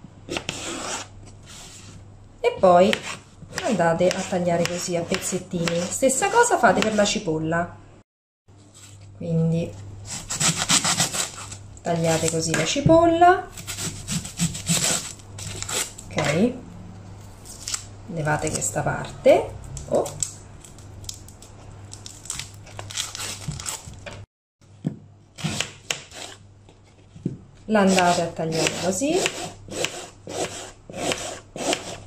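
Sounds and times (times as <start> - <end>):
knife sawing into onion skin: 0.3 - 1.1, 2.9 - 7.1, 10.0 - 12.3, 13.5 - 16.0, 25.4 - 26.4, 27.8 - 32.0.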